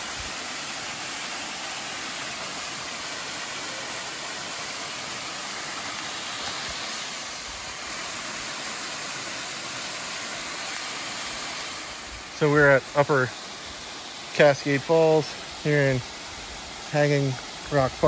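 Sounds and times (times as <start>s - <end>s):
small waterfall rushing: 0.0s - 18.0s.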